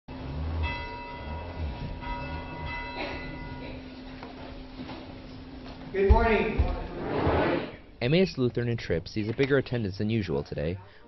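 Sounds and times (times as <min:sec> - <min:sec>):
church bell ringing: 0:00.1 - 0:04.2.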